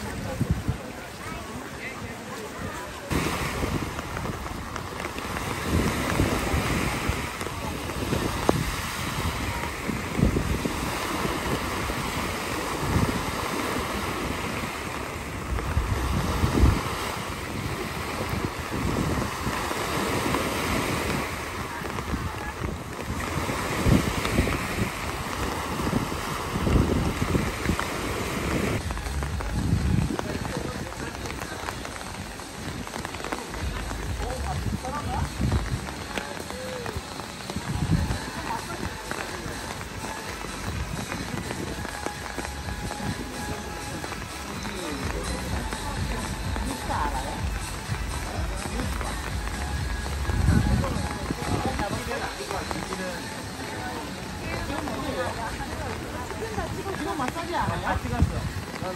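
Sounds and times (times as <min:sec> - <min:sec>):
rushing water and heavy rain: 0:00.0 - 0:58.9
wind buffeting microphone: 0:00.0 - 0:58.9.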